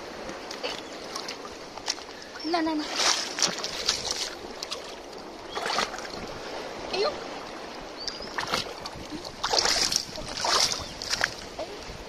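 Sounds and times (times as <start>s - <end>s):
feet splashing in shallow water: 0.0s - 12.0s
water and wind hiss: 0.0s - 12.0s.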